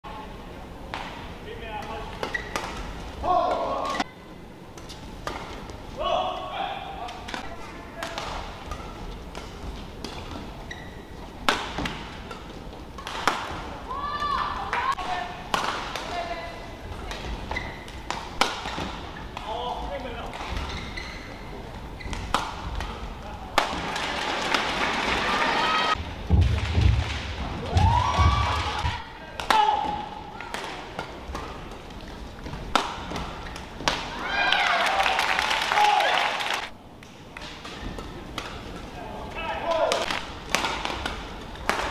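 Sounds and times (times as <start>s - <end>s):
badminton rackets hitting shuttlecock: 1.8s - 4.0s, 11.4s - 16.3s, 16.9s - 19.5s, 22.0s - 24.6s, 29.4s - 34.2s, 39.7s - 41.9s
shoe squeal: 2.3s - 2.6s, 10.6s - 11.1s, 17.5s - 17.9s, 20.6s - 22.2s
people shouting: 13.9s - 15.3s, 25.1s - 26.0s, 27.6s - 30.6s, 34.1s - 36.7s
racket striking shuttlecock: 15.5s - 16.1s, 17.9s - 19.0s, 22.1s - 23.0s, 39.9s - 41.9s.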